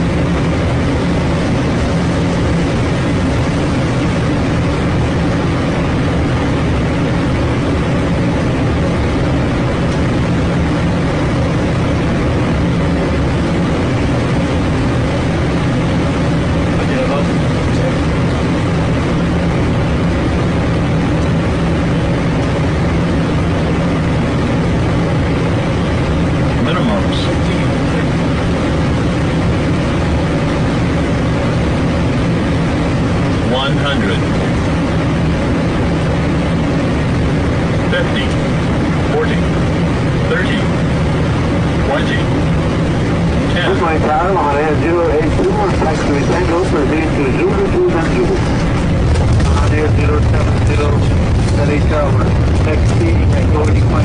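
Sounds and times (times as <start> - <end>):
aircraft engine drone: 0.0 - 54.0
rushing airflow: 0.0 - 54.0.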